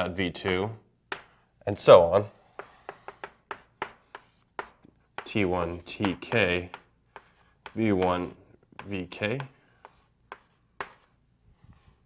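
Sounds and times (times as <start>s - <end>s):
chalk tapping on blackboard: 1.1s - 1.5s, 2.4s - 11.2s.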